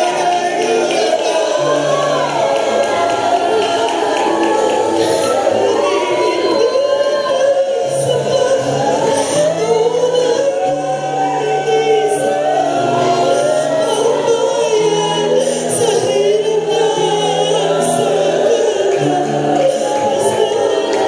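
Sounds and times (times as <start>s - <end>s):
choir singing in harmony: 0.0s - 21.0s.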